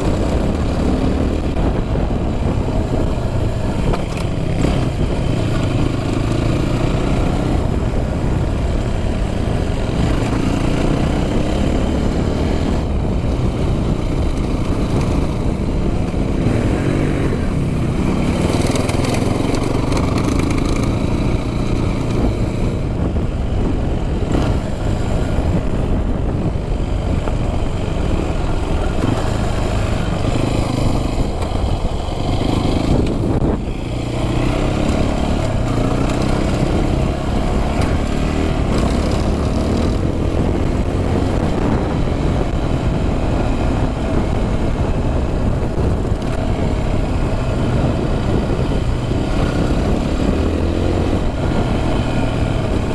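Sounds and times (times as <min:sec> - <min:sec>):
dirt bike engine running: 0:00.0 - 0:52.9.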